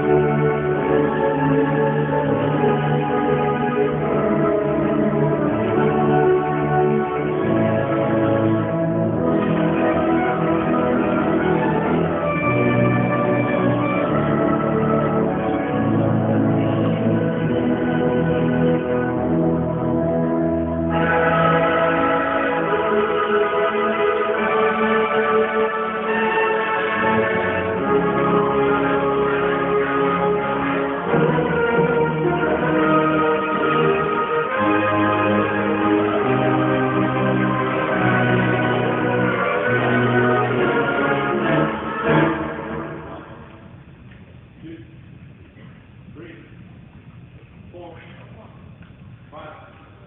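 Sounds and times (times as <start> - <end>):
marching band playing chords: 0.0 - 46.8
steady low rumble: 42.5 - 50.0.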